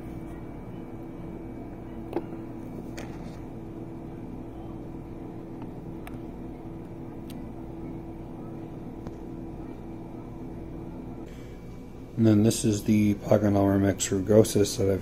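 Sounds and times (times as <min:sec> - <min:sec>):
room hum: 0:00.0 - 0:15.0.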